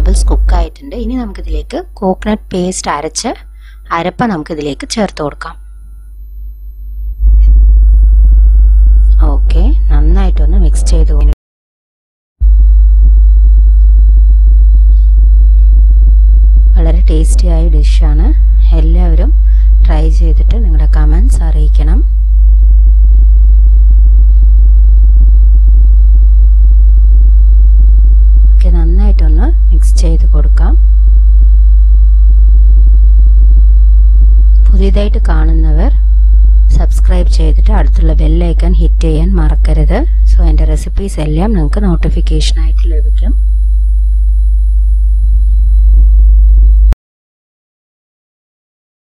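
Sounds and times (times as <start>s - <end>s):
loud low-pitched hum: 0.0s - 11.4s, 12.4s - 47.0s.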